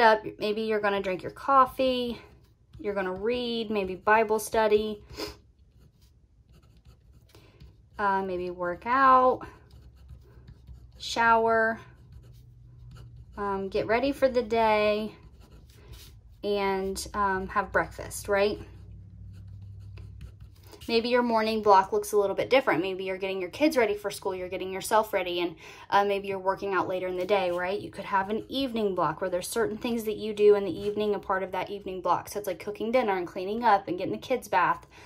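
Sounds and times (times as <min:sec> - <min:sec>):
low steady hum: 0:00.0 - 0:35.0
pen scratching on paper: 0:00.4 - 0:22.9, 0:26.6 - 0:31.9
pen writing on paper: 0:05.7 - 0:07.9, 0:09.5 - 0:11.0, 0:19.3 - 0:20.6.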